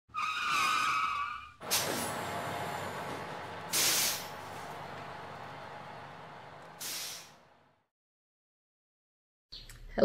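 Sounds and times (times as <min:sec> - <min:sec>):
vehicle hissing: 0:01.6 - 0:07.8.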